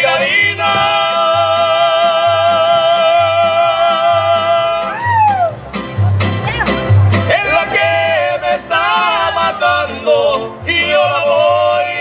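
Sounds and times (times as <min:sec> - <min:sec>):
male singers in harmony: 0:00.0 - 0:05.1, 0:07.3 - 0:12.0
guitars: 0:00.0 - 0:12.0
pulsing bass line: 0:00.0 - 0:12.0.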